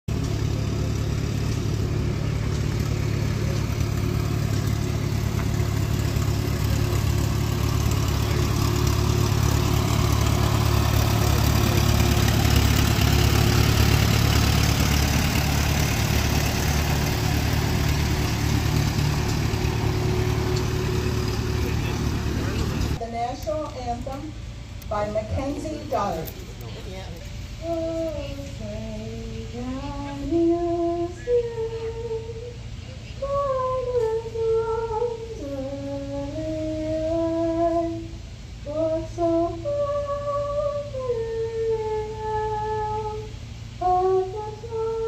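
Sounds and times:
tractor engines running: 0.0 - 45.0.

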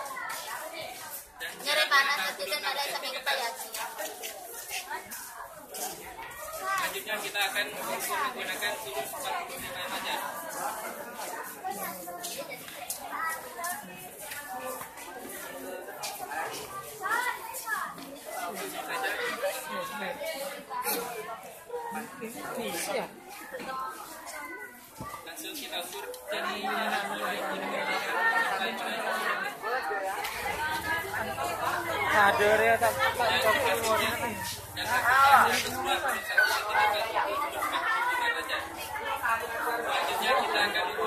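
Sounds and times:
young people chattering: 0.0 - 41.0.

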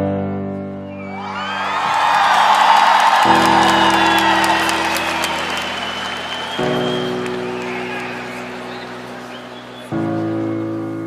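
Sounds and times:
concert crowd cheering: 0.9 - 11.0.

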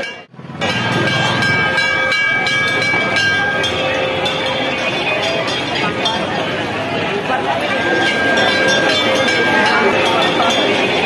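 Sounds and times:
brass hand bells ringing: 0.0 - 11.0
crowd chatter: 0.0 - 11.0.

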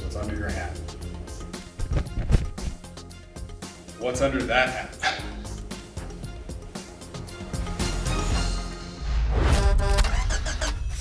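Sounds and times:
music: 0.0 - 11.0.

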